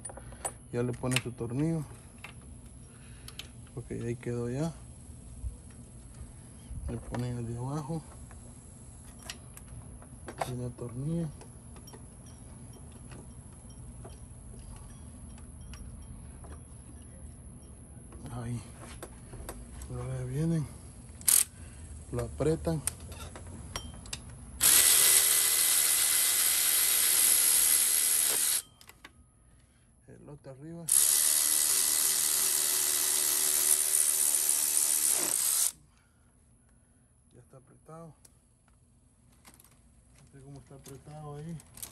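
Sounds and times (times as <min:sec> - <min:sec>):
steady low hum: 0:00.0 - 0:41.9
power tool driving bolt: 0:21.2 - 0:21.5, 0:24.6 - 0:28.9, 0:30.9 - 0:35.8.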